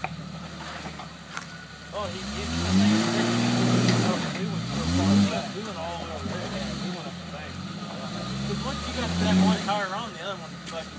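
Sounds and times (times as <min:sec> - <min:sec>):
engine revving under load: 0:00.0 - 0:10.9.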